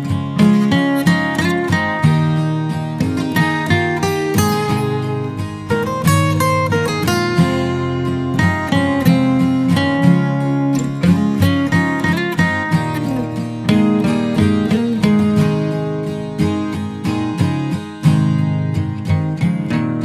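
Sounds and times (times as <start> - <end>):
acoustic guitar music: 0.0 - 20.0.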